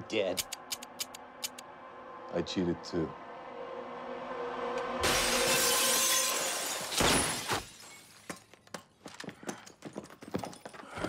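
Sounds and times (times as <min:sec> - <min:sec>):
glass breaking crash: 0:05.0 - 0:08.5.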